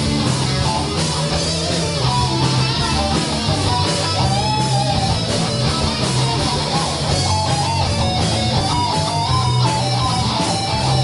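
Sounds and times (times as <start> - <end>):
electric guitar notes bending: 0.0 - 11.0
rock band playing live: 0.0 - 11.0.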